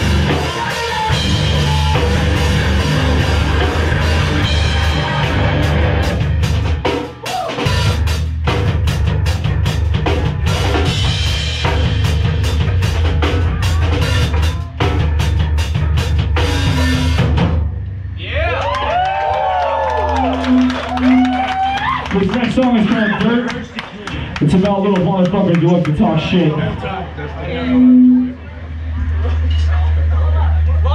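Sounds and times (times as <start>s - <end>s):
punk band playing live: 0.0s - 18.2s
sliding high guitar tones: 20.2s - 21.6s, 27.4s - 28.8s.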